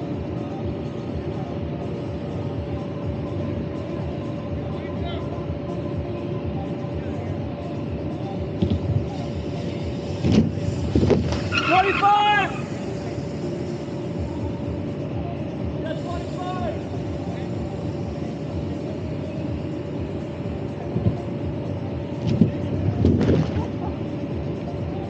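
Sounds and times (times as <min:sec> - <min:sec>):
air blower humming: 0:00.0 - 0:25.0
people shouting: 0:11.5 - 0:12.8.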